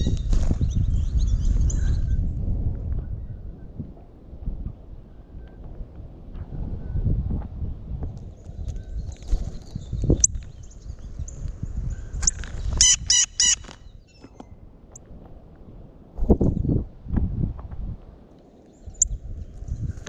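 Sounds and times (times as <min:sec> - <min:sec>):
bird calling: 0:12.2 - 0:14.5.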